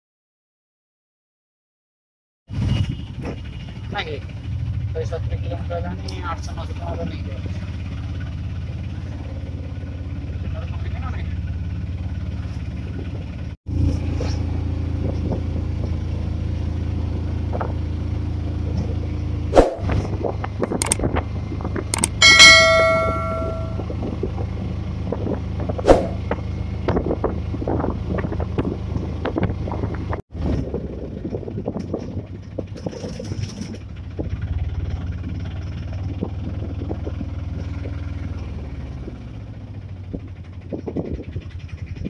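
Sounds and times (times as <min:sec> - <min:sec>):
auto-rickshaw engine running: 0:02.5 - 0:42.0
street noise: 0:02.5 - 0:42.0
sharp clicks: 0:20.8 - 0:21.0, 0:22.0 - 0:22.5
bright bell ding: 0:22.0 - 0:24.0.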